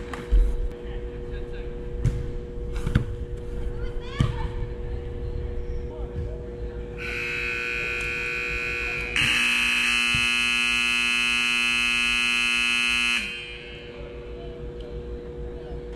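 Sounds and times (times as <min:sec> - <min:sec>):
game clock buzzer: 0:07.0 - 0:14.0.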